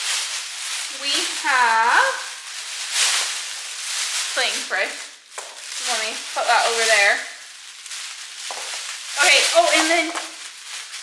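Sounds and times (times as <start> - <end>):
rustling and crinkling of items: 0.0 - 11.0.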